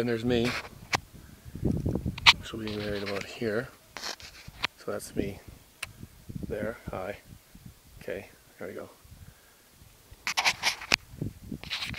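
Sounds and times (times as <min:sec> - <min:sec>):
camera handling scrapes and knocks: 0:00.4 - 0:00.7, 0:02.2 - 0:03.3, 0:04.0 - 0:04.7, 0:10.2 - 0:11.0, 0:11.6 - 0:11.9.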